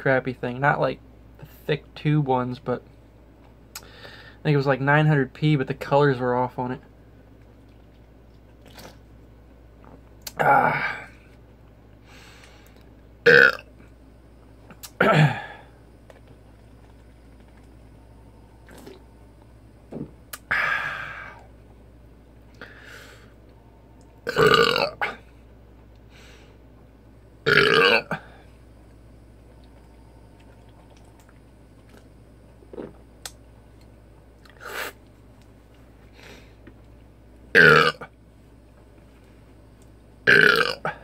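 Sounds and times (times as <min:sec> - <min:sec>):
low steady hum: 0:00.0 - 0:41.0
man burping: 0:10.2 - 0:11.2, 0:13.2 - 0:13.7, 0:14.9 - 0:15.7, 0:20.4 - 0:21.4, 0:24.3 - 0:25.3, 0:27.4 - 0:28.4, 0:37.6 - 0:38.1, 0:40.3 - 0:41.0.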